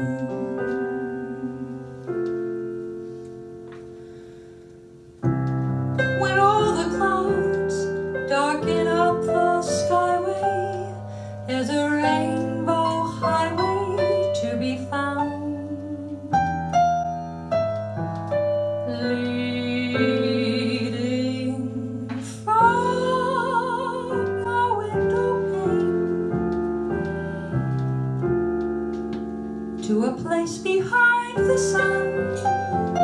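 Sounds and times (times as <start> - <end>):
woman singing with vibrato: 0.0 - 2.0, 6.2 - 16.5, 18.9 - 26.2, 29.8 - 32.6
piano playing jazz chords: 0.0 - 33.0.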